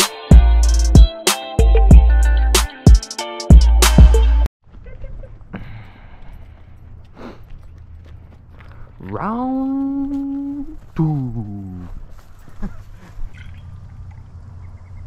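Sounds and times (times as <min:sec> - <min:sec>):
man singing long wordless notes: 0:09.2 - 0:12.0.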